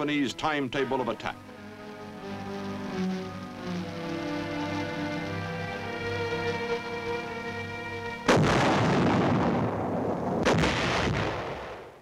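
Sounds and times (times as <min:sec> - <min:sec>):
artillery gun blasts: 0:08.3 - 0:12.0.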